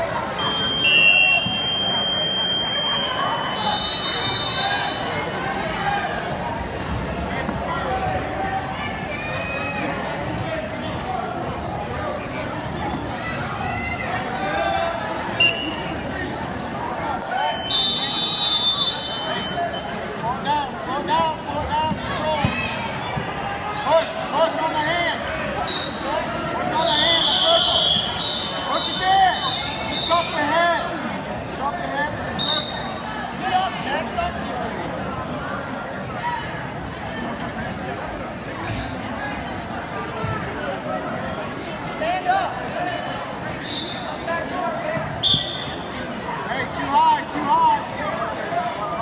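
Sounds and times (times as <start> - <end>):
crowd chatter in a hall: 0.0 - 49.0
high whistle tone: 0.4 - 5.1.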